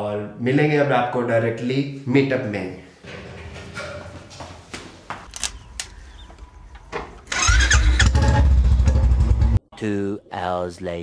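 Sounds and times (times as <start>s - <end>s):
motorcycle engine starting and idling: 6.8s - 9.6s.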